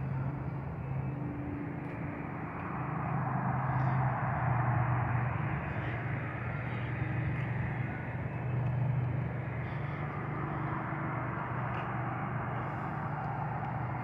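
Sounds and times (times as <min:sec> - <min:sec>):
distant traffic hum: 0:00.0 - 0:14.0.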